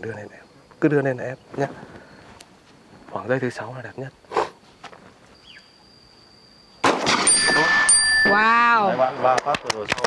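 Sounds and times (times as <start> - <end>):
pistol shot: 6.8 - 7.4.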